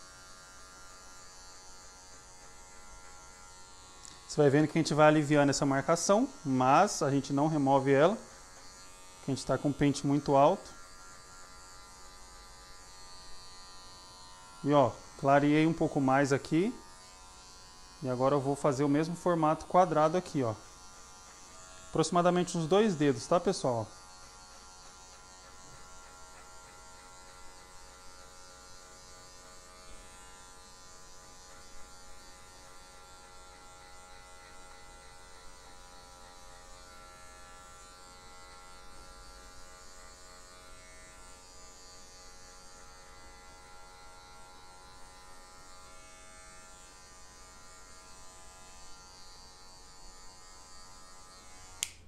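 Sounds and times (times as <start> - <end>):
electric hair clipper buzzing: 0.0 - 52.0.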